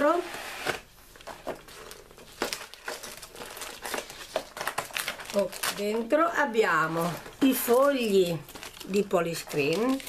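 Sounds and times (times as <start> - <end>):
packaging crinkling and rustling: 0.6 - 10.0.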